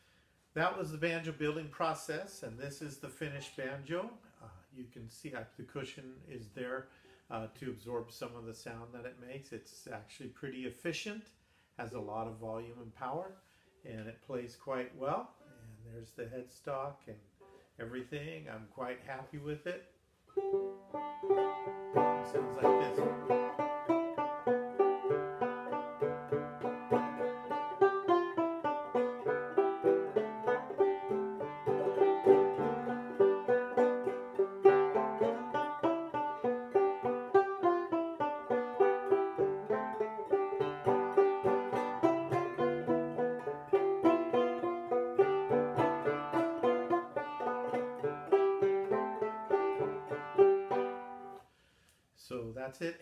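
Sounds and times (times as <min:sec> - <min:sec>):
banjo picking: 0:20.3 - 0:51.4.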